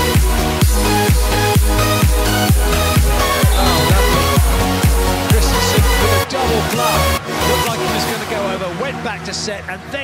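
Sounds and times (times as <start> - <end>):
man commentating excitedly: 3.0 - 9.5.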